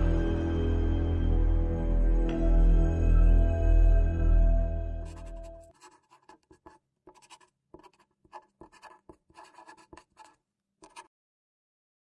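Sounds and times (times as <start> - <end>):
marker pen on whiteboard: 5.0 - 11.1.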